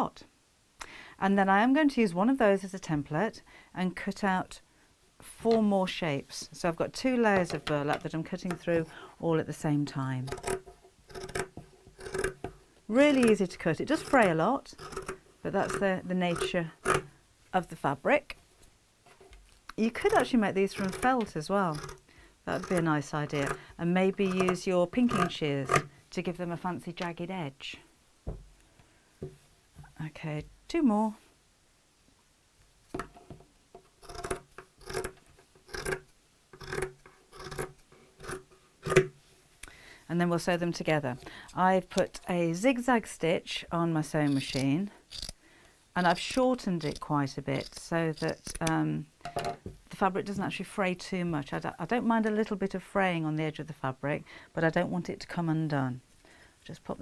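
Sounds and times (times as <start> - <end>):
scissors cutting coarse fabric: 13.0 - 17.0, 19.9 - 23.6, 44.2 - 45.4, 46.1 - 48.8.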